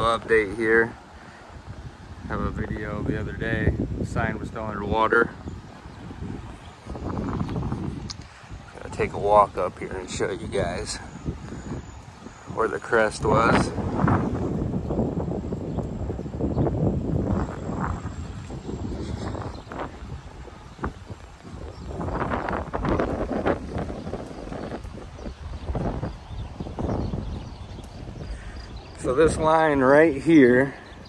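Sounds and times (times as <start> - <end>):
wind buffeting microphone: 0.0 - 31.0
footsteps outdoors: 13.8 - 31.0.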